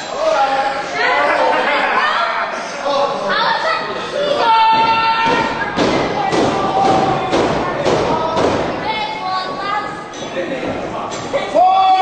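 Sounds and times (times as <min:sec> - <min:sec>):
voices: 0:00.0 - 0:12.0
rhythmic thuds: 0:04.4 - 0:11.4.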